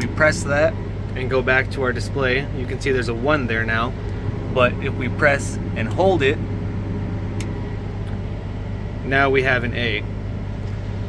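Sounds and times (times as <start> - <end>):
low machine hum in cab: 0.0 - 11.0.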